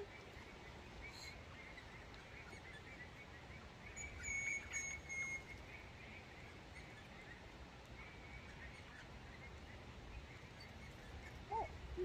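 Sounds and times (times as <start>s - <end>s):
faint bird chirps: 0.0s - 12.0s
low outdoor ambience: 0.0s - 12.0s.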